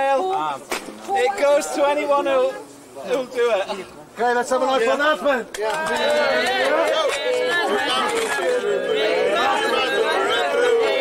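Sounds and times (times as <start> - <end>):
people talking over one another: 0.0 - 11.0.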